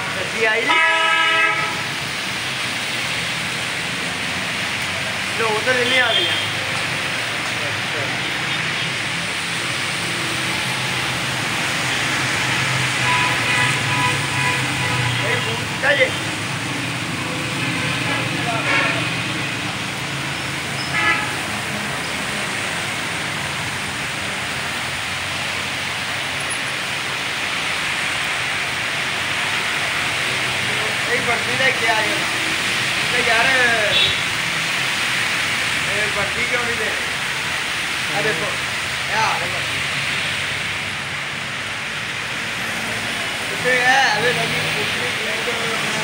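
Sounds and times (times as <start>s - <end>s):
heavy rain on road: 0.0s - 46.0s
passing cars and motorcycles: 0.0s - 46.0s.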